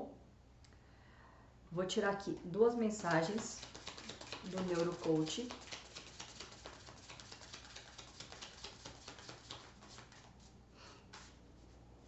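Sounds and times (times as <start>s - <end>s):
cards being shuffled: 2.9s - 10.5s.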